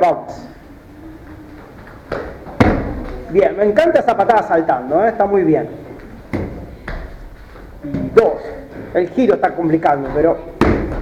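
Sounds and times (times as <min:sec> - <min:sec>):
kick striking foam shield: 0:02.1 - 0:03.2, 0:10.6 - 0:11.0.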